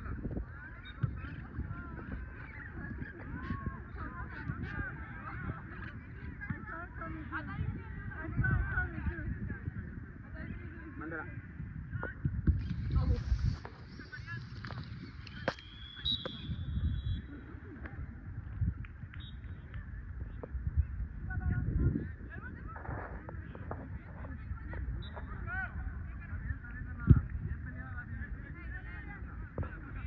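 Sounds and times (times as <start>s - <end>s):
low crowd rumble: 0.0s - 30.0s.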